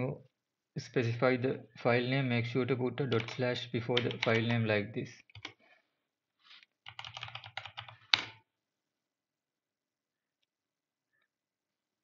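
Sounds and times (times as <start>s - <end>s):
keyboard typing: 3.1s - 4.6s, 5.3s - 5.6s, 6.8s - 8.4s.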